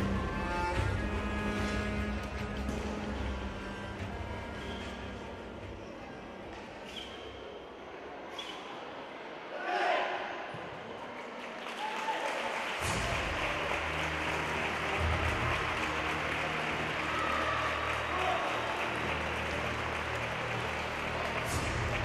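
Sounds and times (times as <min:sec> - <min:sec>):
music with low bass line: 0:00.0 - 0:05.8, 0:19.4 - 0:22.0
audience applauding: 0:11.2 - 0:22.0.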